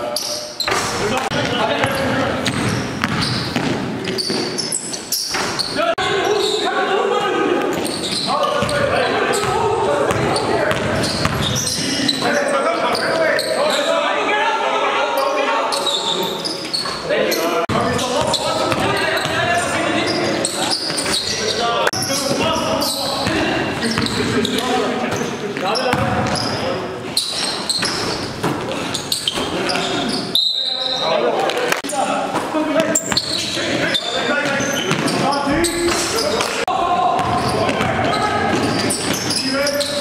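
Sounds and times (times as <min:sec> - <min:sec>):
players talking and calling: 0:00.0 - 0:40.0
basketball bouncing on gym floor: 0:00.7 - 0:04.4, 0:08.6 - 0:11.6, 0:37.2 - 0:39.2.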